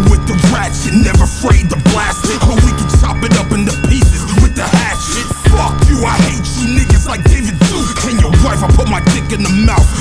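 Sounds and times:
heavy hip hop drum beat: 0.0 - 10.0
man rapping: 0.0 - 10.0.

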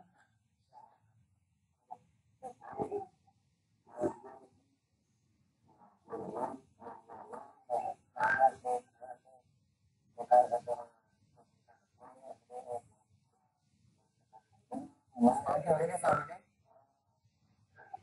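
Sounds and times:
man speaking over video call: 10.2 - 10.9.

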